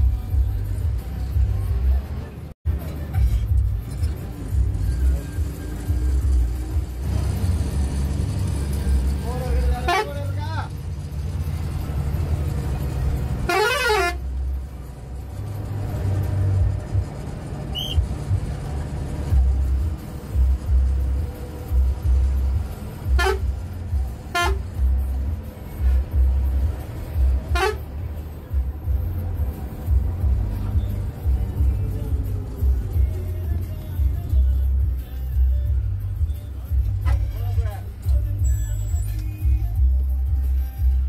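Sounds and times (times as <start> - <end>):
bus engine running: 0.0 - 41.0
horn blasts: 9.6 - 10.4, 13.4 - 14.4, 23.0 - 23.6, 24.3 - 24.8, 27.4 - 28.0.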